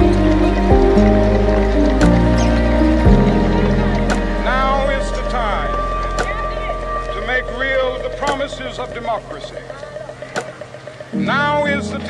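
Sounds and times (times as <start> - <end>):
background music held tones: 0.0 - 12.0
man giving a speech: 4.1 - 10.6, 11.2 - 12.0.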